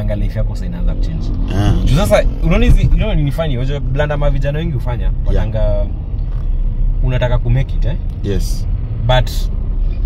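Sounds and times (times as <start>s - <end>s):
car engine rumble from inside: 0.0s - 10.0s
person speaking: 1.4s - 2.1s.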